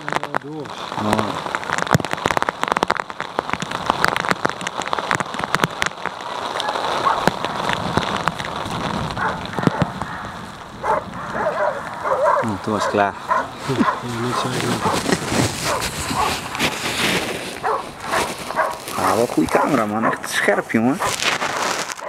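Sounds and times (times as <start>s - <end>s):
crackling and clicking: 0.0s - 22.0s.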